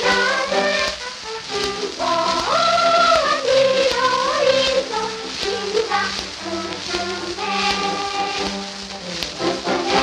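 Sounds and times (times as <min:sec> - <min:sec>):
faint record clicks: 0:00.0 - 0:10.0
orchestral children's song on record: 0:00.0 - 0:10.0
record surface hiss: 0:00.0 - 0:10.0.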